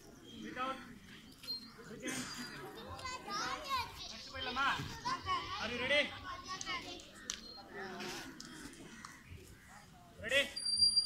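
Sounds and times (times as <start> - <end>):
children chattering and calling out: 0.0 - 10.2.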